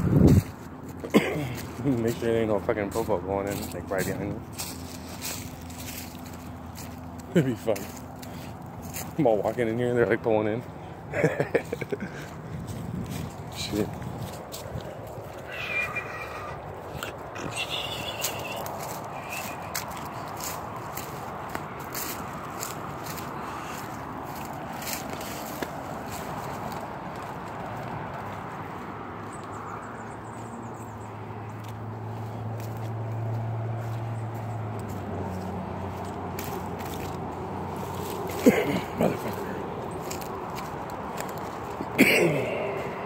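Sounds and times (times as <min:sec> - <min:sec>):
footsteps crunching through dry brush: 0:00.0 - 0:43.0
high animal calls: 0:15.2 - 0:20.0.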